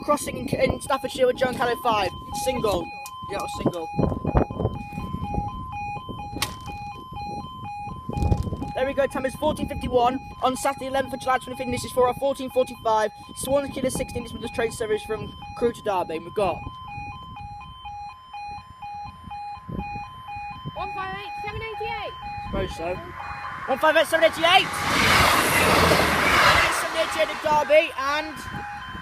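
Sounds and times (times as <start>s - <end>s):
level crossing alarm warbling: 0.0s - 29.0s
low rumble: 22.1s - 29.0s.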